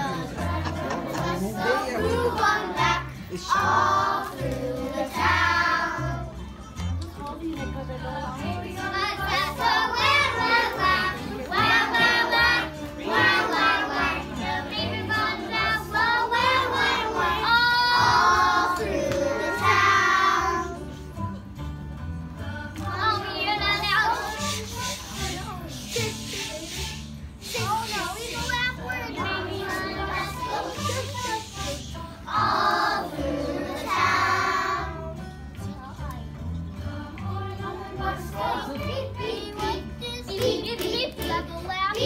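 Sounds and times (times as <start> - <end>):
children singing in unison: 0.0 - 6.3, 8.8 - 20.8, 29.2 - 31.6, 32.3 - 35.1, 37.1 - 41.3.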